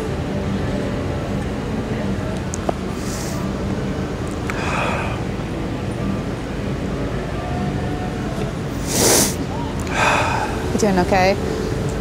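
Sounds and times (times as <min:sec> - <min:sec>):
man sniffling and breathing sharply: 0:08.8 - 0:10.5.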